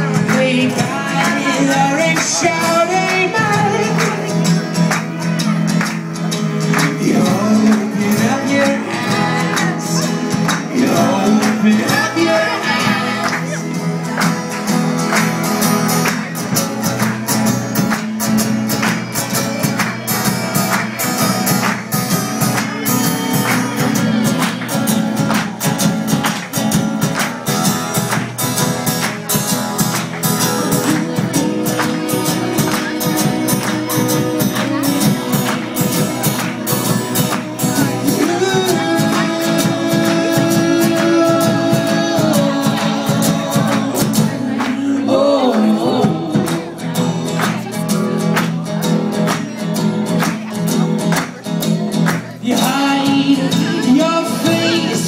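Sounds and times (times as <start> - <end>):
folk band playing live: 0.0 - 55.0
percussion: 0.0 - 55.0
strummed acoustic guitars: 0.0 - 55.0.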